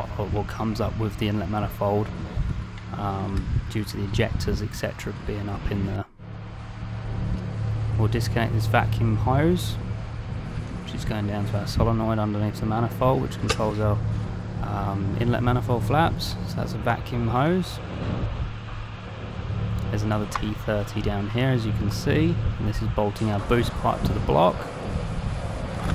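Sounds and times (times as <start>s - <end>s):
steady low hum: 0.0s - 25.9s.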